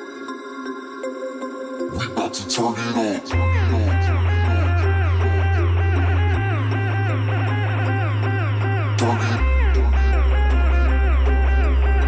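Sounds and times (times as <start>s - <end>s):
deep bass synth note: 3.3s - 12.0s
plucked synth notes: 3.3s - 12.0s.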